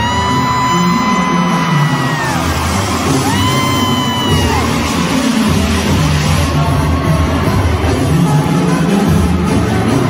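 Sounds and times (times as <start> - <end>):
crowd yelling: 0.0 - 10.0
live band playing: 0.0 - 10.0.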